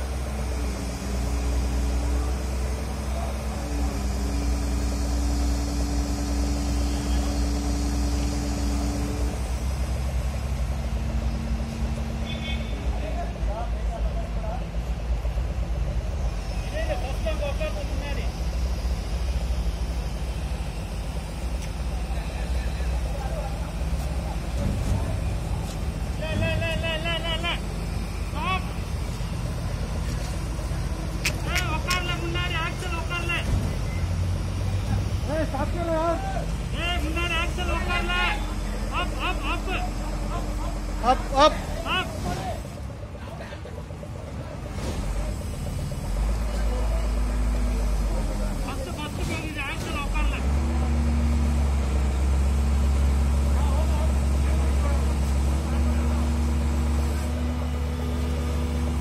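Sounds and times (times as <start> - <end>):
heavy diesel engine running: 0.0 - 59.0.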